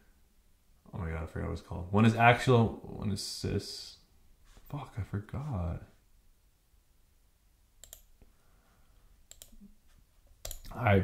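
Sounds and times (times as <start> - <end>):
computer mouse clicks: 7.8 - 8.2, 9.3 - 9.7, 10.4 - 10.8.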